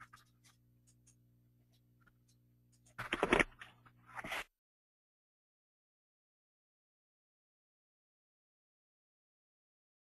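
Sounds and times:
low steady hum: 0.0 - 4.5.

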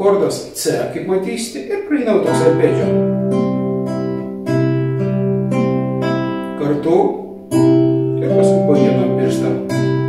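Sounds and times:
fingerpicked classical guitar arpeggio: 2.2 - 10.0.

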